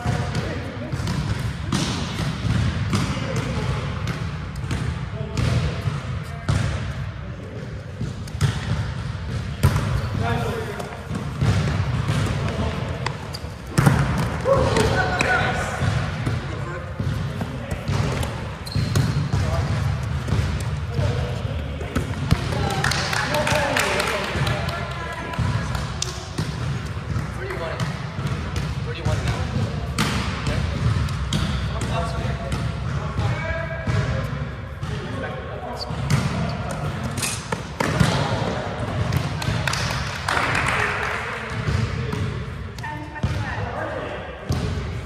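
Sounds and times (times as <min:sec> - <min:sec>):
volleyball thuds: 0:08.0 - 0:23.1.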